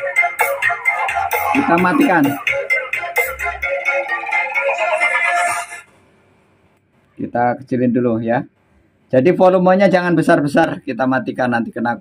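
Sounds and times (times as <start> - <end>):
dance music with heavy bass: 0.0 - 5.8.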